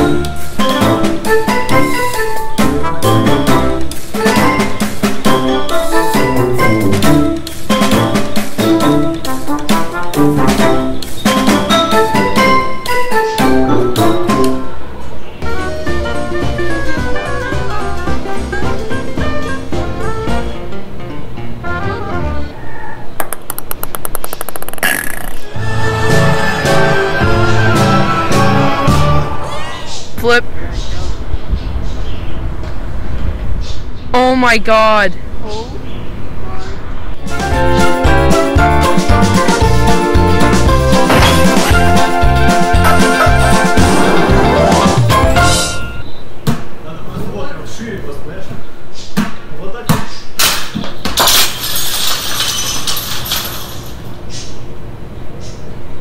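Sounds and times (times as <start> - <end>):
small ball bouncing on floor: 23.2 - 25.4
glass shattering: 50.4 - 54.2
glass pieces clinking on floor: 51.2 - 54.2.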